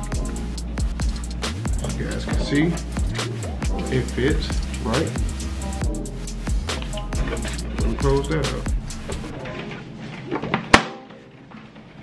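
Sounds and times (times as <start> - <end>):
quiet background music: 0.0 - 11.9.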